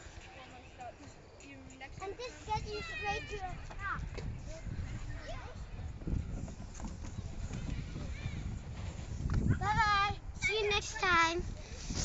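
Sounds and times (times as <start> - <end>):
microphone handling noise: 5.9 - 10.1, 11.0 - 12.0.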